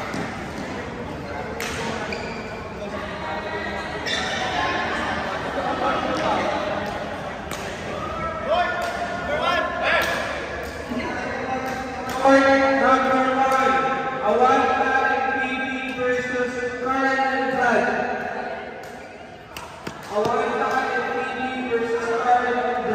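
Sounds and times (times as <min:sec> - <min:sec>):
voices echoing in a hall: 0:00.0 - 0:22.9
rackets striking shuttlecock: 0:08.7 - 0:09.2.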